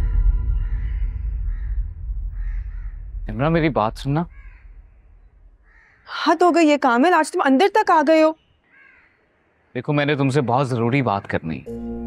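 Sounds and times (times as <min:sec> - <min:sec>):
crows cawing: 0:00.0 - 0:03.2, 0:04.3 - 0:05.0, 0:05.6 - 0:06.4, 0:08.6 - 0:09.7
low outdoor rumble: 0:00.0 - 0:05.9.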